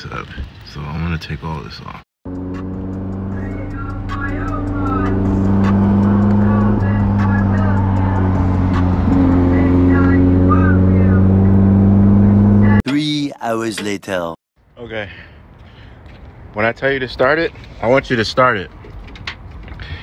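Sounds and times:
car engine revving above idle: 2.3 - 12.7.

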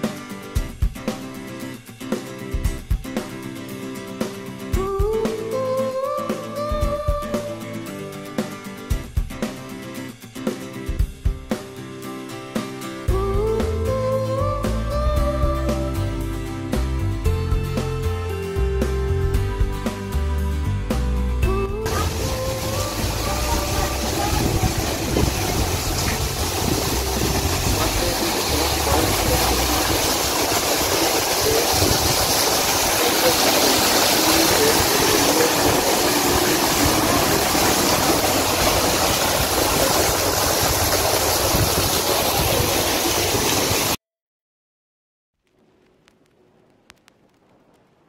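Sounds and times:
background music: 0.0 - 31.7
water splashing over rocks: 21.9 - 44.0.

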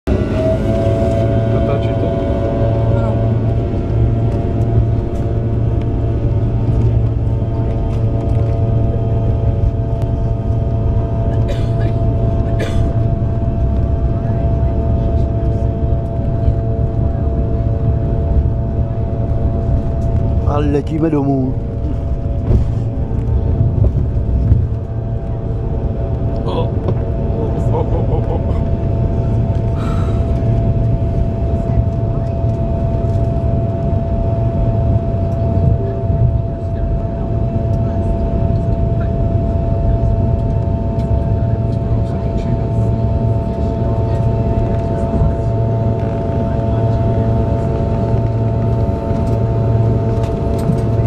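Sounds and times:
airliner engines rumbling and whining: 0.1 - 51.0.

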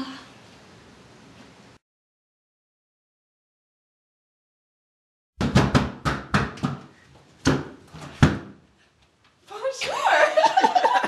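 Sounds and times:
knocking on a door: 5.4 - 6.8.

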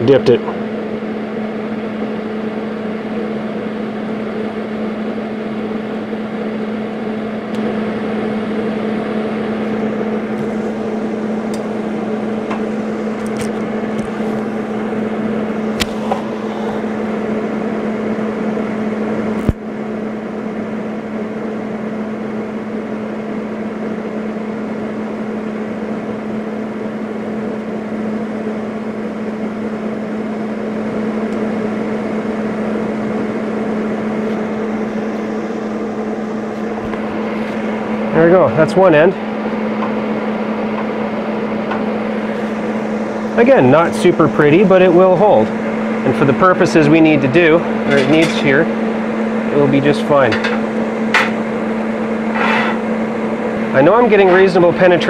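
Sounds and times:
welding arc buzzing hum: 0.0 - 55.0.

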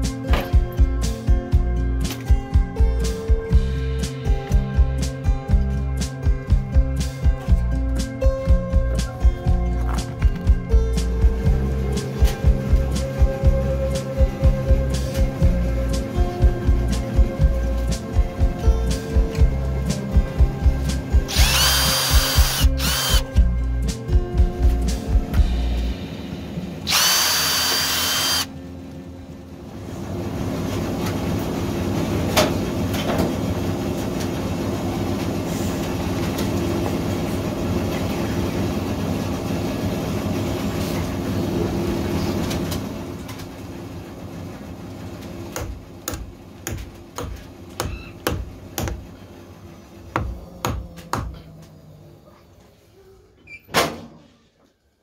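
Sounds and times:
cordless drill into wood: 21.3 - 23.3, 26.9 - 28.5.

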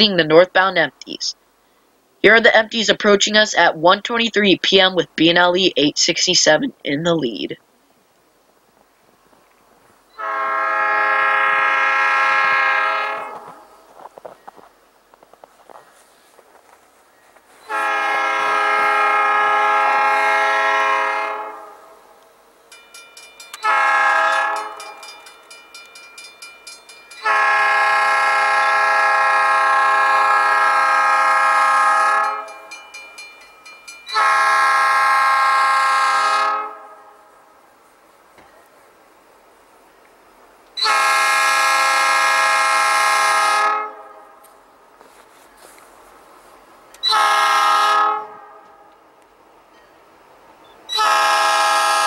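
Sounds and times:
locomotive air horn blasts: 10.2 - 13.8, 17.6 - 22.1, 23.6 - 25.0, 27.2 - 32.7, 34.1 - 37.4, 40.8 - 44.5, 47.0 - 48.9, 50.9 - 52.0
crossing bell ringing: 22.7 - 28.4, 32.2 - 34.8.

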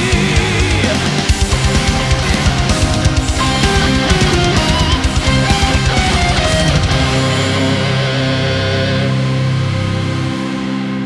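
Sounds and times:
rock band chord ringing: 0.0 - 11.0.

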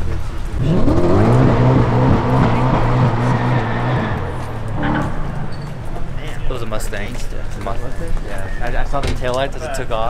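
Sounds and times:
car engine revving: 0.0 - 7.6.

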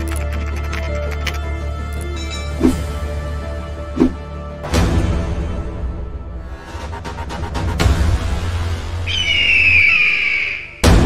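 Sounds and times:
falling whistling tone: 9.0 - 10.8.

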